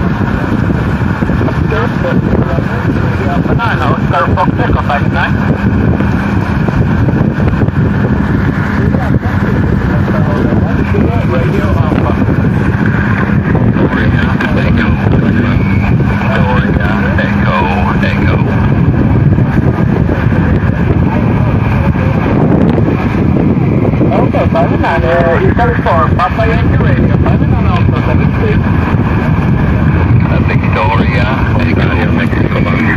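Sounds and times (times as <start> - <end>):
steady low tone: 0.0 - 32.9
weak radio voice: 1.6 - 5.4, 8.7 - 18.7, 24.0 - 28.6, 30.0 - 32.9
heavy radio static: 1.6 - 5.5, 8.5 - 18.8, 23.6 - 28.7, 29.6 - 32.9.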